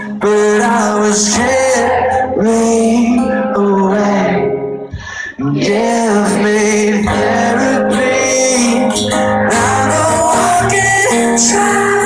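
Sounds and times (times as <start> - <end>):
person singing: 0.0 - 12.0
strummed acoustic guitar: 0.0 - 12.0.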